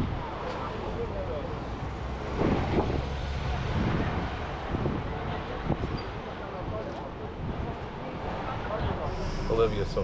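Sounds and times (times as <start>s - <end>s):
wind rumbling on microphone: 1.8s - 9.5s.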